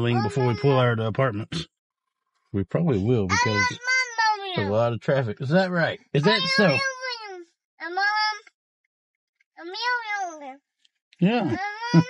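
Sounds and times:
toddler babbling: 0.0 - 1.4, 2.8 - 8.4, 9.6 - 10.6, 11.4 - 12.0.

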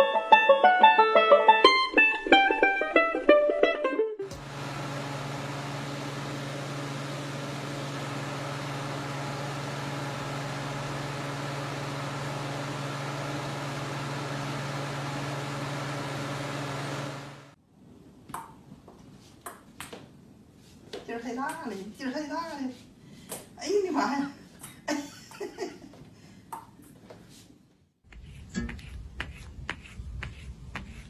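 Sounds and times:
floor fan whirring: 4.3 - 17.7.

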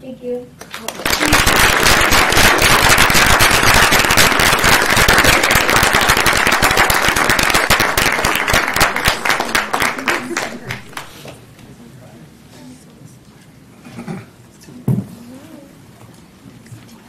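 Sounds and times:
audience applauding: 0.6 - 11.1.

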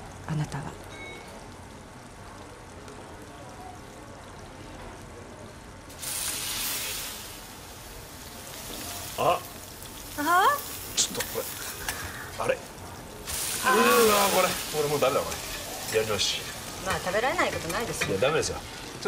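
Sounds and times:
meat sizzling on a pan: 5.8 - 19.0.

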